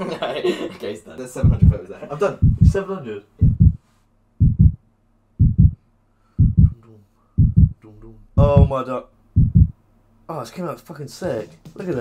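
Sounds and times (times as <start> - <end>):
faint low hum: 0.0 - 10.8
heartbeat double thump: 1.4 - 1.8, 2.4 - 2.8, 3.4 - 3.8, 4.4 - 4.8, 5.4 - 5.8, 6.4 - 6.8, 7.4 - 7.8, 8.4 - 8.7, 9.4 - 9.8.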